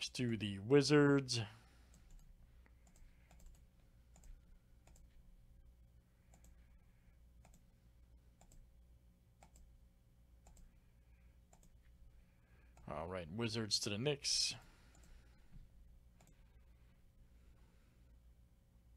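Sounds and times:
low steady hum: 0:00.0 - 0:18.9
computer mouse clicks: 0:01.9 - 0:05.1, 0:06.3 - 0:06.6, 0:07.4 - 0:07.7, 0:08.4 - 0:08.6, 0:09.4 - 0:09.7, 0:10.4 - 0:10.7, 0:11.5 - 0:11.8, 0:14.9 - 0:15.2, 0:16.2 - 0:16.4.

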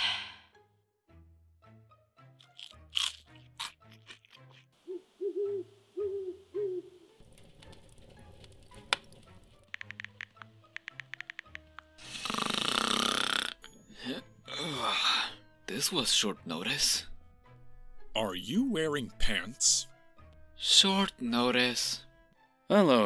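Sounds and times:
light background music: 0:00.0 - 0:23.0
cartoon owl hooting: 0:04.8 - 0:07.2
loud cartoon snore: 0:12.0 - 0:13.7.

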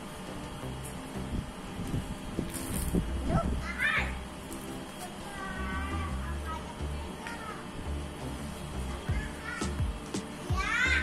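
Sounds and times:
sand hissing: 0:01.9 - 0:03.3.

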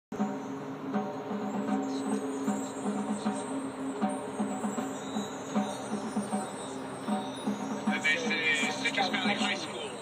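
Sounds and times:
mallet percussion and keyboard figure: 0:01.0 - 0:10.0.

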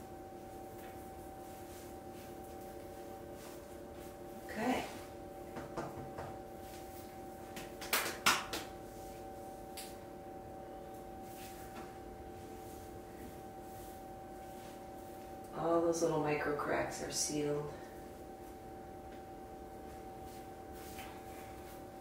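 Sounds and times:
steady hum of fixed tones: 0:00.0 - 0:22.0.

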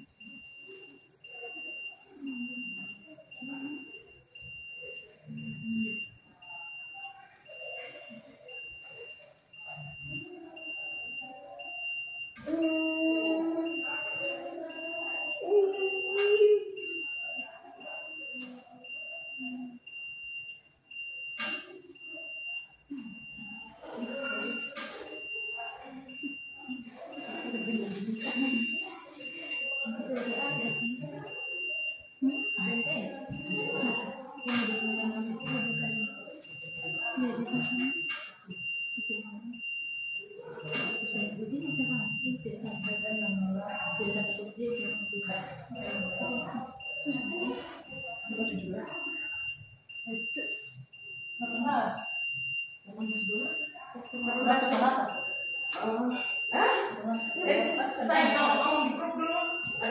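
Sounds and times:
voices: 0:00.0 - 0:59.9.

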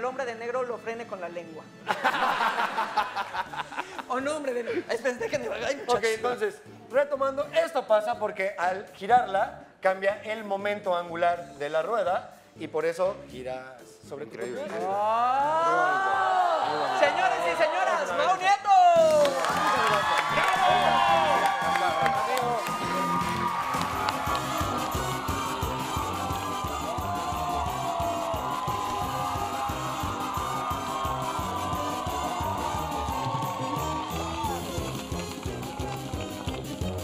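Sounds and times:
show music: 0:14.6 - 0:37.0
audience cheering and clapping: 0:19.0 - 0:37.0.

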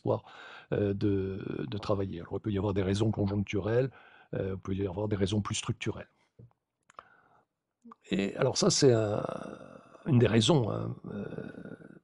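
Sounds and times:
person speaking: 0:00.0 - 0:03.8, 0:07.9 - 0:11.8.

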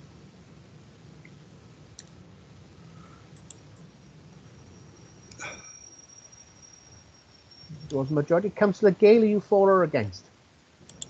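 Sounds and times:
faint high whine: 0:00.0 - 0:11.0
faint microphone hum: 0:00.0 - 0:11.0.

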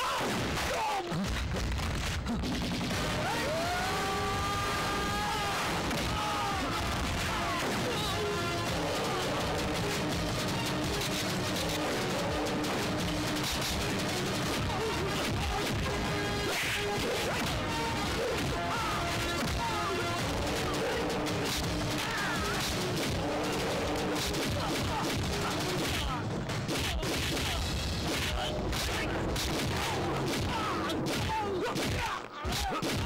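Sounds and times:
rapid gunfire: 0:00.0 - 0:33.0
background music: 0:02.4 - 0:33.0
punch and smash impacts: 0:05.6 - 0:33.0.

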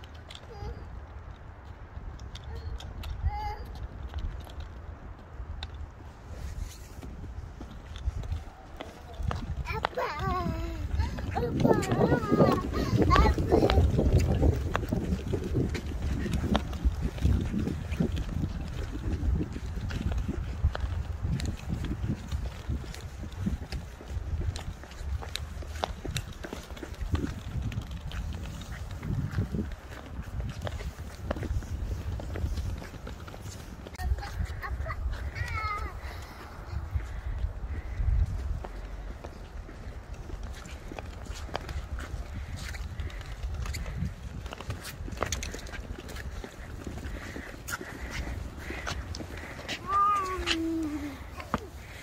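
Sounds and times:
scooter wheels rattling over bricks: 0:00.0 - 0:36.0, 0:39.7 - 0:52.0
footsteps on pavers: 0:00.0 - 0:52.0
child whining cry: 0:02.5 - 0:03.8, 0:08.8 - 0:14.1, 0:49.7 - 0:52.0.

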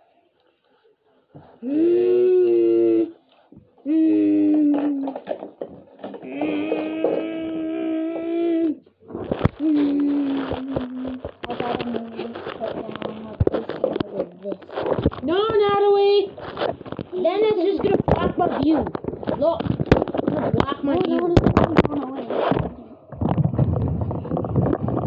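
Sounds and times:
plastic toy cars clicking: 0:04.5 - 0:07.4.

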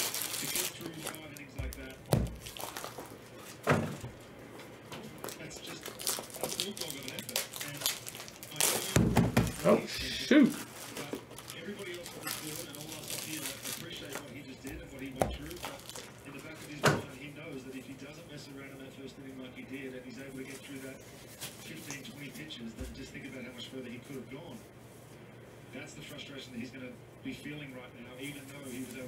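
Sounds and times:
faint tv broadcast speech: 0:00.0 - 0:29.0.

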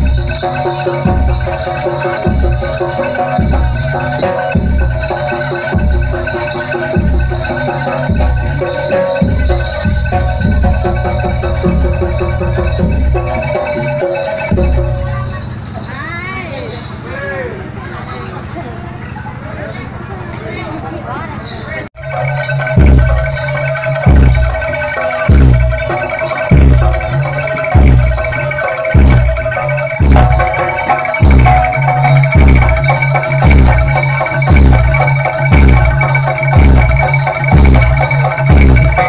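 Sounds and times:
deep drum beat: 0:00.0 - 0:15.3, 0:22.0 - 0:39.0
metallophone notes: 0:00.0 - 0:19.7, 0:21.1 - 0:39.0.

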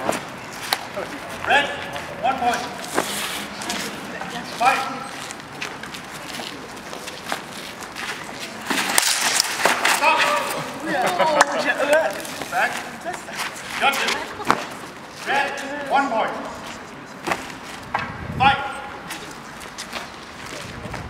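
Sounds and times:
footsteps scuffing on cobblestones: 0:00.0 - 0:09.8, 0:19.0 - 0:21.0
people calling out: 0:10.0 - 0:12.2.

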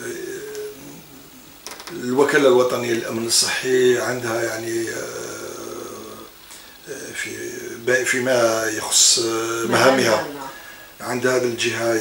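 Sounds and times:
man speaking: 0:06.9 - 0:12.0.

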